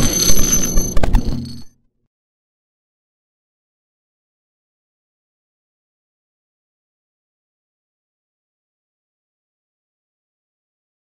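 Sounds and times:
digital crackle: 0.0 - 1.7
high ringing tones: 0.0 - 1.7.

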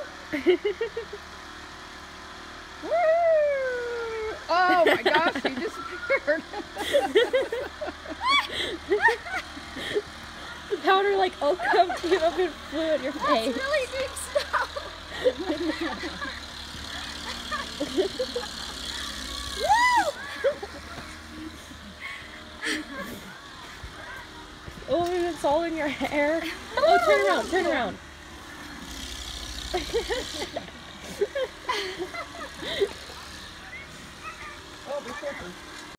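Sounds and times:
woman laughing: 0.2 - 1.3, 2.8 - 23.8, 25.8 - 28.0, 29.6 - 33.5
person shouting woo: 2.8 - 4.4, 19.4 - 20.4
woman squealing: 2.8 - 4.7, 8.2 - 9.2, 19.3 - 20.5, 26.7 - 27.5.

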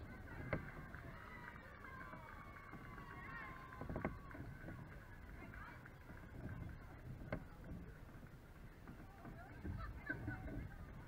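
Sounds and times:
distant voices: 0.0 - 11.0
low outdoor rumble: 0.0 - 11.0.

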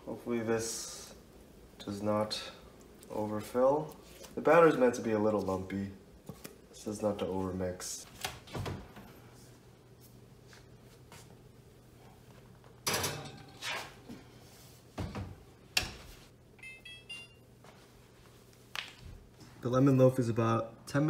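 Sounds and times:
oven door shutting: 12.8 - 14.0.

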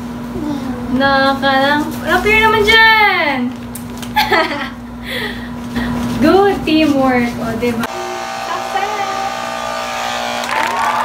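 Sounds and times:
steady hum: 4.5 - 11.0
sustained music chord: 7.9 - 10.4
crowd cheering and applause: 9.8 - 11.0.

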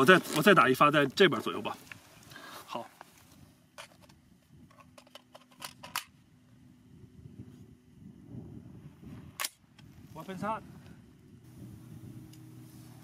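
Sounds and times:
faint steady hum: 0.5 - 13.0.

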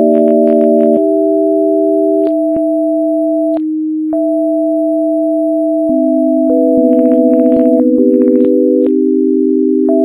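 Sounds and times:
sine tone chord: 0.0 - 10.0.

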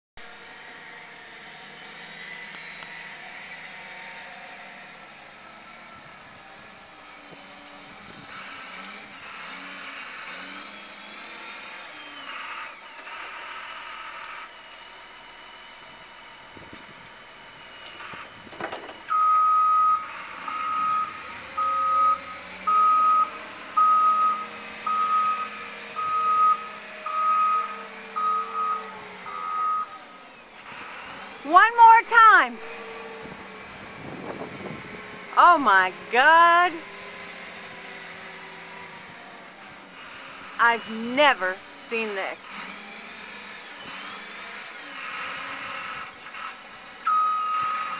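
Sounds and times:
diesel engine running: 0.2 - 47.9
reversing alarm beeping: 19.1 - 30.2, 47.1 - 47.9.

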